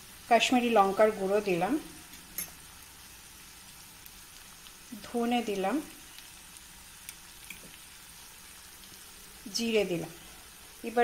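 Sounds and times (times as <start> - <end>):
onions sizzling in oil: 0.0 - 11.0
tiny crackles: 4.0 - 9.4.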